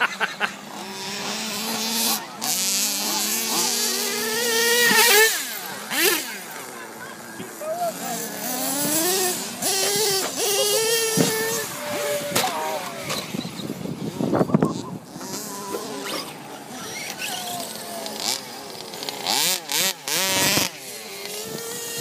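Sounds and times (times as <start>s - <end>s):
model car motor revving: 0.0s - 22.0s.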